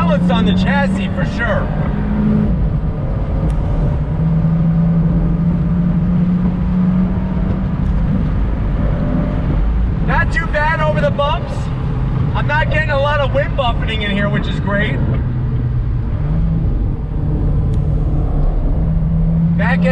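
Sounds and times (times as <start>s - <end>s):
car engine cruising: 0.0s - 19.9s
low road noise rumble: 0.0s - 19.9s.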